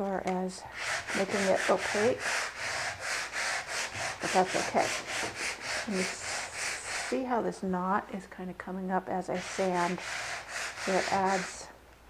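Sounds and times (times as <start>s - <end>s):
sandpaper rubbing wood: 0.7s - 7.2s, 9.3s - 11.7s.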